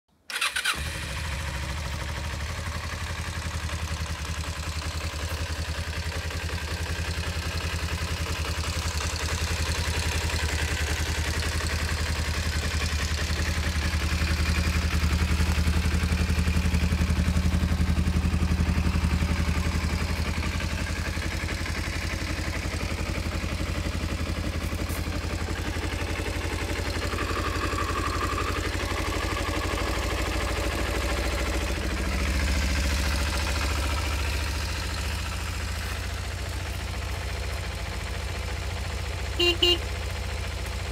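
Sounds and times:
motorcycle engine starting and idling: 0.2 - 40.9.

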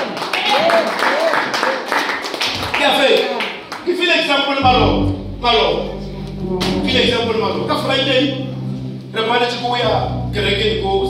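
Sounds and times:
man's voice over pa system: 4.6 - 11.0.

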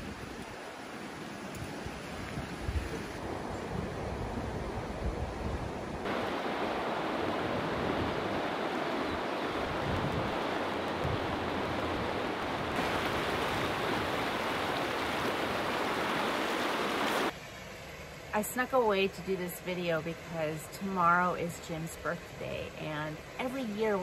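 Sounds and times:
fast-flowing river rushing: 6.0 - 17.3.

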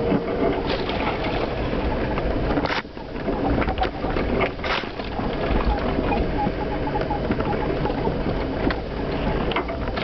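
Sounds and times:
engine and drivetrain rumble: 0.0 - 10.0
knocks and rattles over bumps: 0.0 - 10.0.

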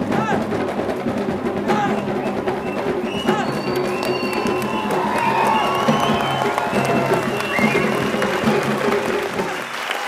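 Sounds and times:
audience cheering and applauding: 2.4 - 10.0
high shouts and whoops: 3.3 - 8.6.

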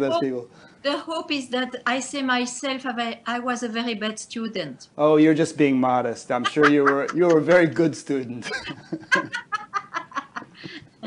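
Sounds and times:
woman laughing: 6.4 - 7.6, 8.4 - 10.8.

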